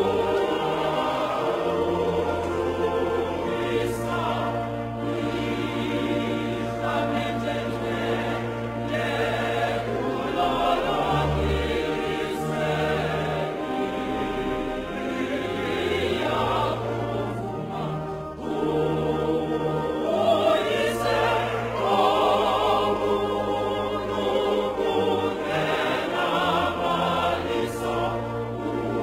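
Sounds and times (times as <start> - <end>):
group singing a hymn: 0.0 - 29.0.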